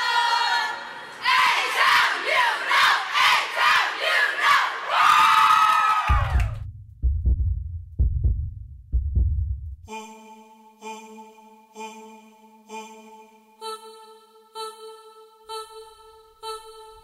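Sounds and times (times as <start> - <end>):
girls shouting a chant: 0.0 - 6.0
deep low thuds: 6.1 - 9.9.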